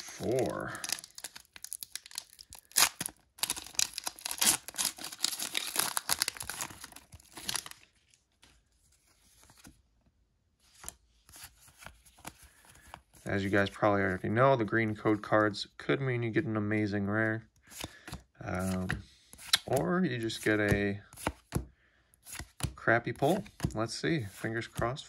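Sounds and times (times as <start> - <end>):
foil wrapper tearing and crinkling: 0.0 - 7.9
cards rustling: 0.0 - 9.8, 10.6 - 15.5, 17.6 - 21.6, 22.2 - 25.0.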